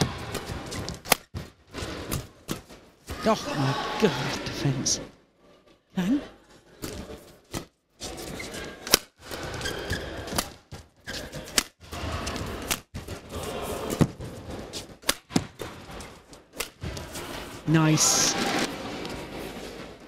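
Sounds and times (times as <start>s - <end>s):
rackets striking shuttlecock: 0.2s - 1.5s, 14.8s - 15.8s, 16.5s - 17.1s
arena crowd hubbub: 3.0s - 10.4s, 11.1s - 20.0s.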